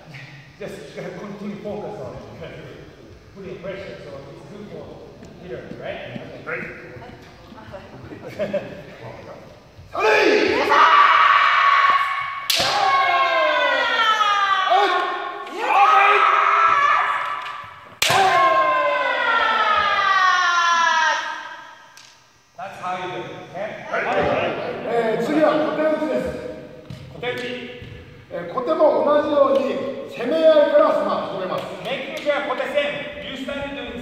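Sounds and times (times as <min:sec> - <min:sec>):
loud shouted yells: 0:09.9 - 0:21.8
bamboo sword strike crack: 0:12.5 - 0:12.9, 0:18.0 - 0:18.4.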